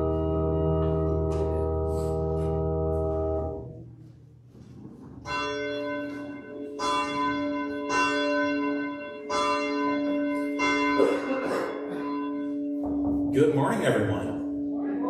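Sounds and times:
bell ringing: 0:05.3 - 0:15.0.

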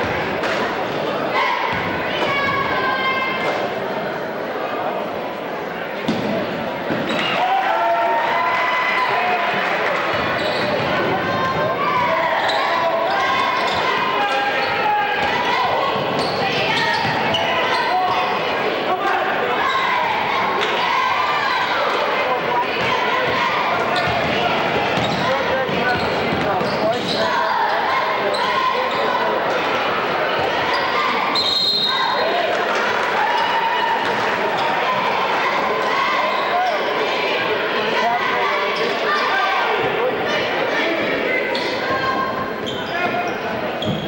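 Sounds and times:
voices calling and shouting: 0:05.7 - 0:44.0.

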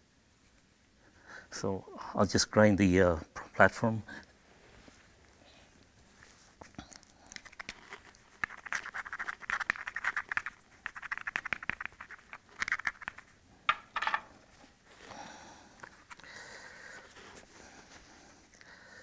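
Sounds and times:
stone scraping flint: 0:07.3 - 0:15.1.

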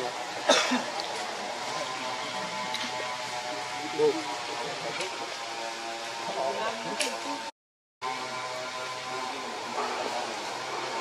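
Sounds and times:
person coughing: 0:00.4 - 0:00.9.

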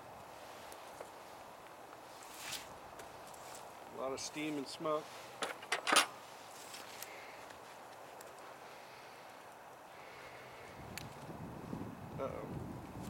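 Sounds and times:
faint steady hiss: 0:00.0 - 0:13.0
knocks and clicks of handling: 0:05.4 - 0:06.1.

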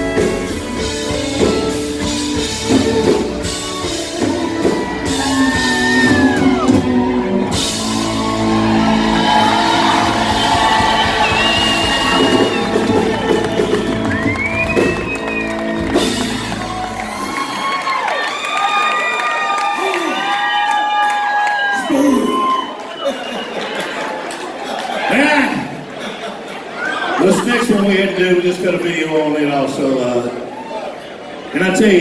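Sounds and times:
country-rock band playing: 0:00.0 - 0:17.8, 0:27.2 - 0:30.0
crowd cheering and whooping: 0:02.6 - 0:25.9, 0:26.6 - 0:27.9, 0:30.4 - 0:31.3.

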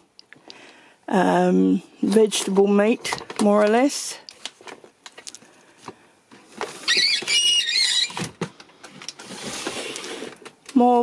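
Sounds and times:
plastic-on-plastic squeak: 0:06.6 - 0:08.4
drawer sliding rustle: 0:09.2 - 0:10.4.

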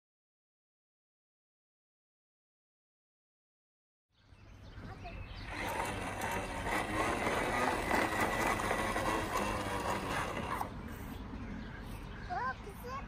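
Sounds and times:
toy lawnmower whirring and clicking: 0:05.3 - 0:11.1.

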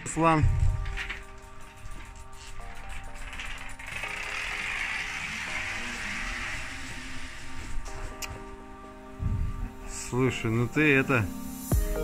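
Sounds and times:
electric bicycle whirring: 0:00.0 - 0:10.2
background music: 0:00.0 - 0:12.0.

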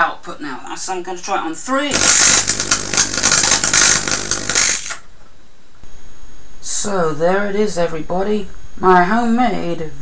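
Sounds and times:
tesla coil crackling hiss: 0:01.9 - 0:05.1.

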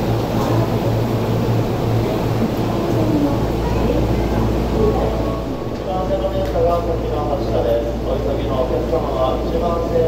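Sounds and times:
electric trains humming: 0:00.0 - 0:06.2.

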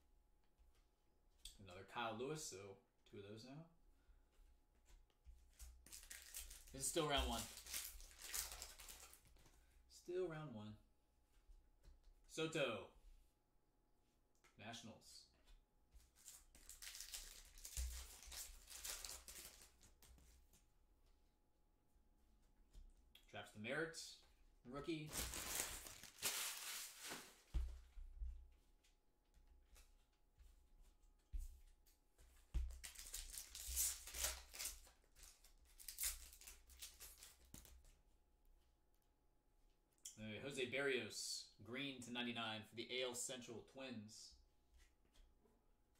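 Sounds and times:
foil wrapper crinkling and tearing: 0:05.9 - 0:09.2, 0:16.2 - 0:20.0, 0:25.1 - 0:27.4, 0:32.8 - 0:37.7.

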